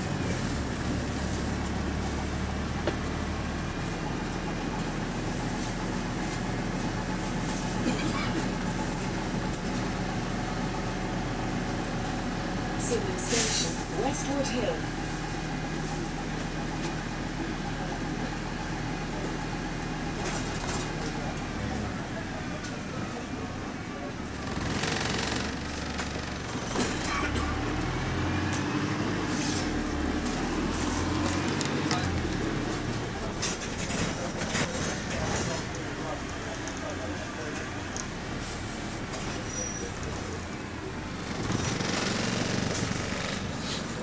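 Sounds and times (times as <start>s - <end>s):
bus engine drone: 0.0s - 44.0s
passengers talking: 0.0s - 44.0s.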